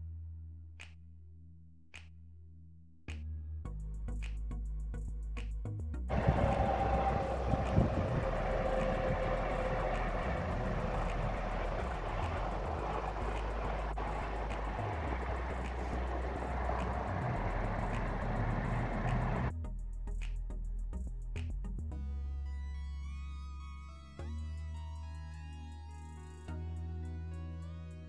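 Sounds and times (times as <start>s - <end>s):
low background music: 3.1s - 28.0s
vehicle road and wind noise: 6.1s - 19.5s.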